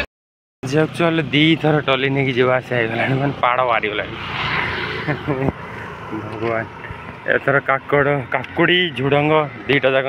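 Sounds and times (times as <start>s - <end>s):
vehicle passing on road: 0.6s - 10.0s.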